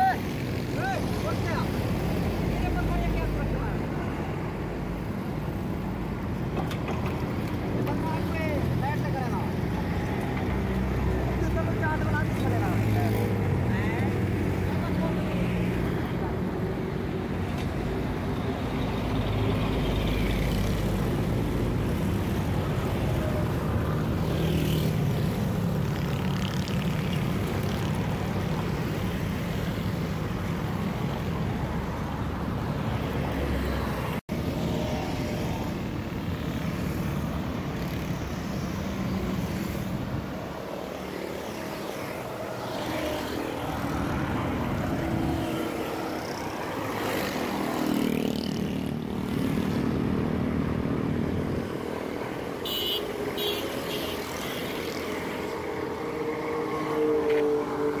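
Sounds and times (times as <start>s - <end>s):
city road traffic rumble: 0.0s - 58.0s.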